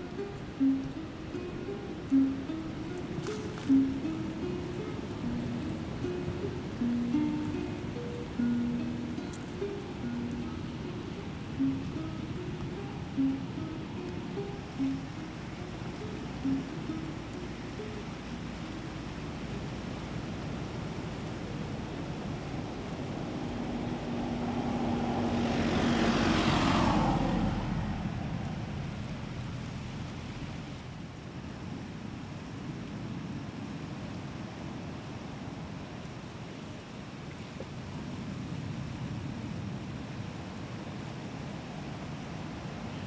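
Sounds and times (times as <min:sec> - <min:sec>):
car passing by: 0:00.0 - 0:31.4
surf: 0:00.0 - 0:37.8
wind: 0:00.0 - 0:43.0.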